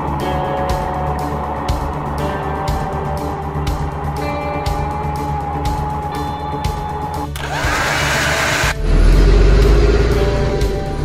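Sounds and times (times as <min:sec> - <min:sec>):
background music with steady tones: 0:00.0 - 0:11.0.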